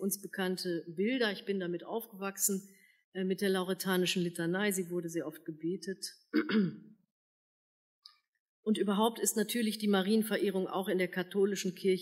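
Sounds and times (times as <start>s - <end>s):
woman clearing her throat: 6.4s - 6.9s.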